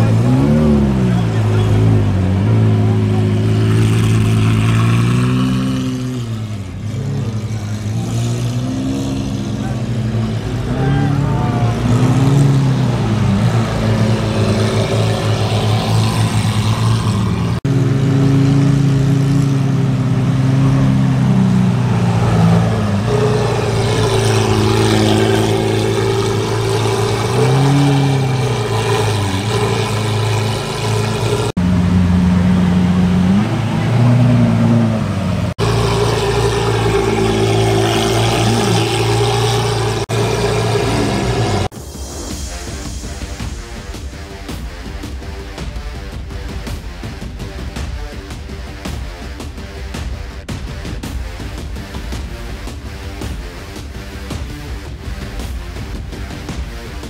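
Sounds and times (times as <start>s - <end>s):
car engine idling and revving: 0.0s - 57.0s.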